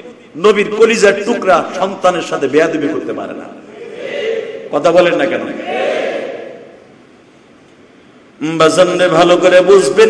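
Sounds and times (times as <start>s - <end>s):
man preaching: 0.0s - 5.9s, 8.4s - 10.0s
faint room hiss: 0.0s - 10.0s.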